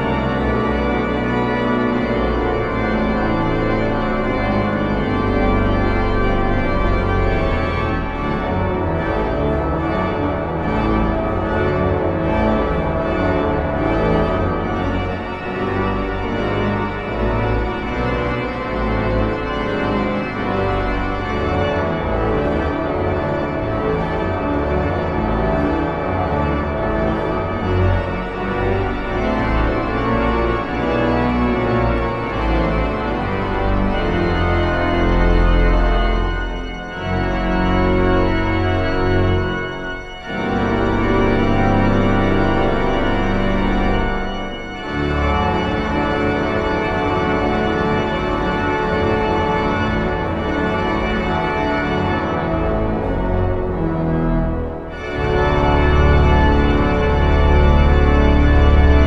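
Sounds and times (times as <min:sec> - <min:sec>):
deep organ pedal bass: 0:00.0 - 0:59.0
pipe organ chords: 0:00.0 - 0:59.0.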